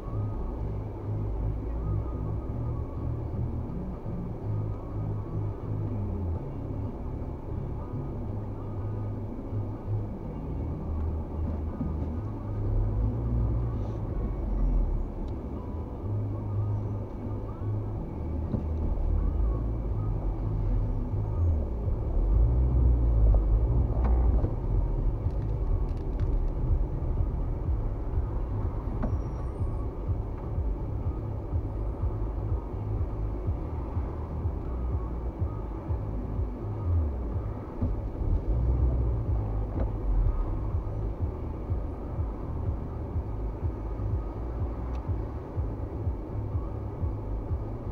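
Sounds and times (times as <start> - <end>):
car engine and road rumble: 0.0 - 47.9.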